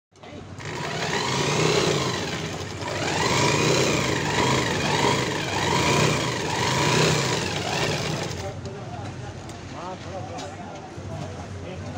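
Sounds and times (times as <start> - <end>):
sewing machine motor running: 0.6 - 8.6.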